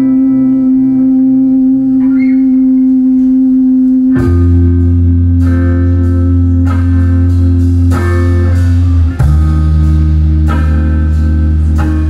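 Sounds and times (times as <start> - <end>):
held instrument note: 0.0 - 12.0
low pulsing tone: 0.0 - 12.0.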